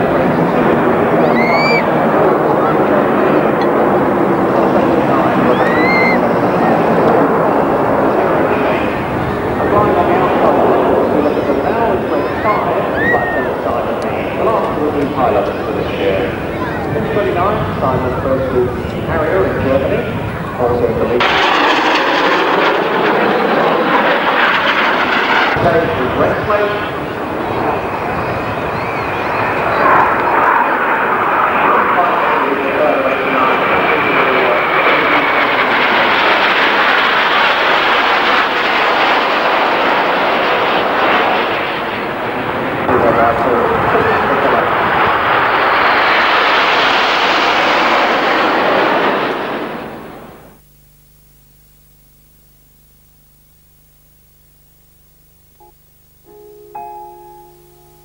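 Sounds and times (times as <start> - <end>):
jet engines roaring: 0.0 - 50.6
whine falling in pitch: 1.1 - 2.4, 5.0 - 7.4.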